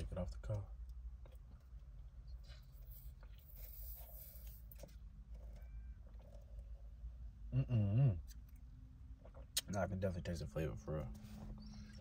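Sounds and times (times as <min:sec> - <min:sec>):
low hum inside car: 0:00.0 - 0:12.0.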